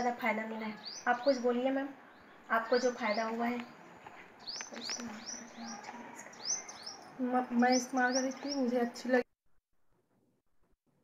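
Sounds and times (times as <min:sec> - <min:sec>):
small bird chirping: 0:00.0 - 0:09.0.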